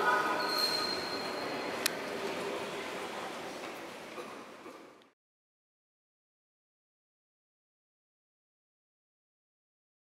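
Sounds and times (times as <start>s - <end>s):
rushing indoor hall noise: 0.0s - 5.2s.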